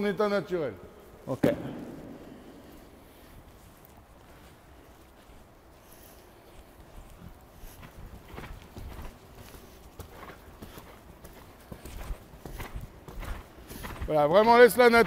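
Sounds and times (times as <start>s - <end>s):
horse hoofbeats on sand: 1.4s - 15.0s.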